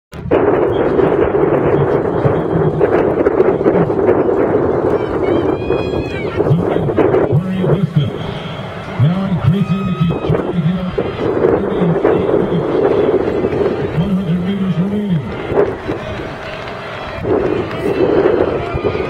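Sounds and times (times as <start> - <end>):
crowd murmur: 0.6 - 19.0
announcer over loudspeaker: 0.9 - 4.0, 4.8 - 15.7.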